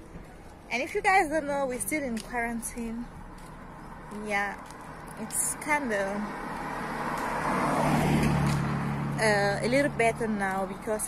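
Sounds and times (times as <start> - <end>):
car approaching: 0.0 - 11.0.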